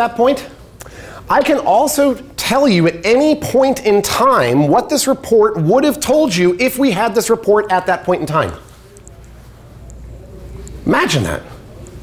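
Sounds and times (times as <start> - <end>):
man talking: 0.0 - 0.6, 1.3 - 8.7, 10.8 - 11.8.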